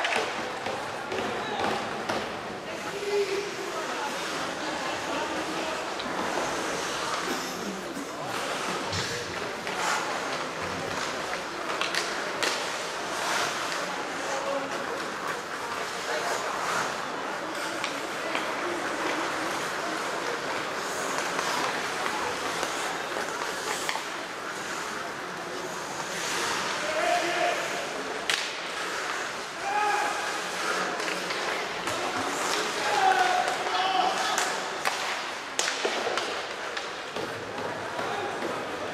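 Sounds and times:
skate blades scraping ice: 2.3s - 38.7s
hockey stick crack: 8.4s - 14.0s, 17.5s - 25.0s, 28.2s - 38.7s
sticks striking puck: 28.2s - 28.7s, 31.0s - 38.6s.

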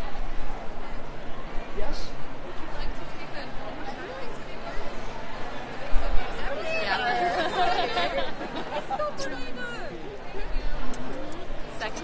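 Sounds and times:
busy room chatter: 0.0s - 12.0s.

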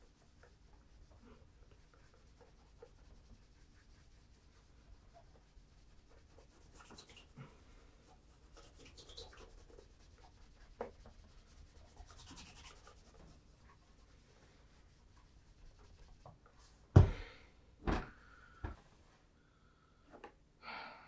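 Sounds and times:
cloth rubbing on leather shoe: 0.0s - 16.3s.

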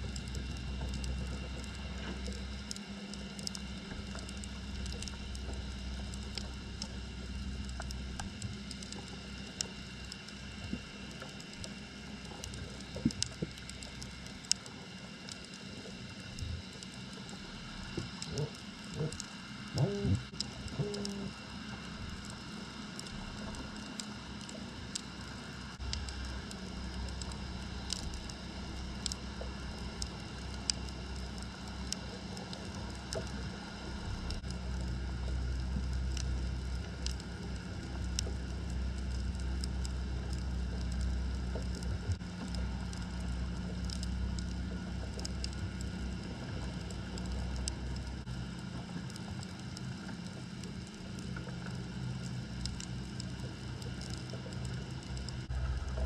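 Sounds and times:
low underwater rumble: 0.0s - 56.0s
sharp underwater clicks: 0.1s - 56.0s.

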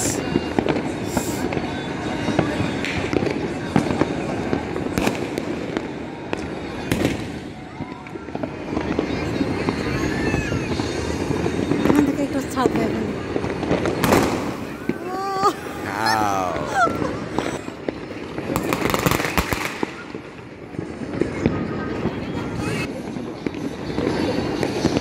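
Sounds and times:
firecrackers crackling: 0.0s - 25.0s
firework bangs: 0.0s - 25.0s.

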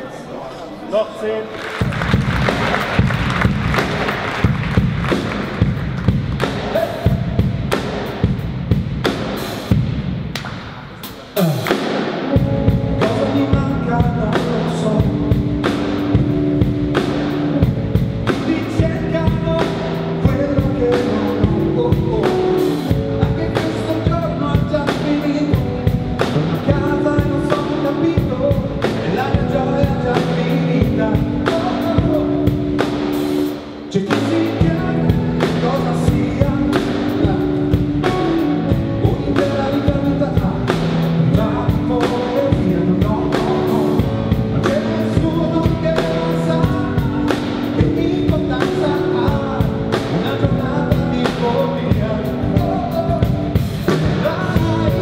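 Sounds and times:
band playing pop song: 1.2s - 55.0s.

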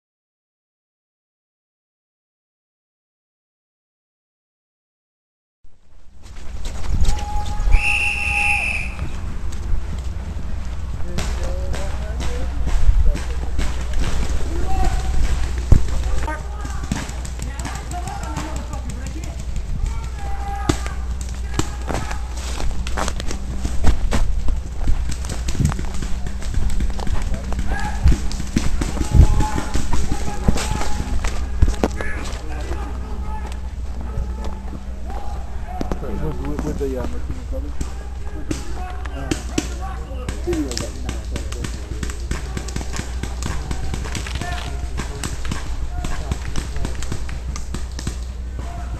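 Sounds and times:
steady low rumble: 5.7s - 48.9s
wind rumble on microphone: 6.1s - 8.2s, 8.8s - 16.3s, 22.6s - 32.5s
people shouting: 7.1s - 9.1s, 14.0s - 22.6s, 25.9s - 36.7s, 37.7s - 48.9s
paintball markers firing: 11.1s - 32.8s, 37.7s - 48.9s.

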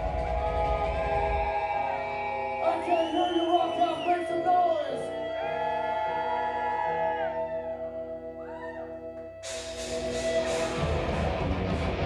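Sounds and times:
distorted guitar and bass chords: 9.4s - 12.0s.

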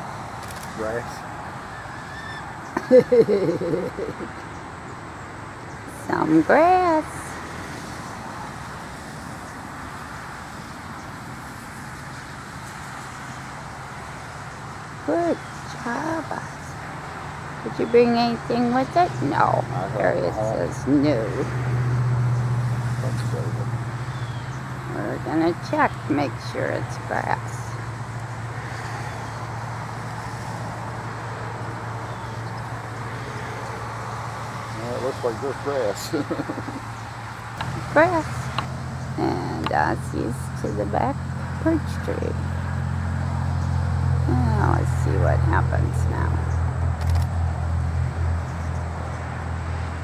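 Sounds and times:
distant road traffic rumble: 0.0s - 50.0s
outdoor background noise: 0.0s - 50.0s
constant low hum: 12.0s - 50.0s.

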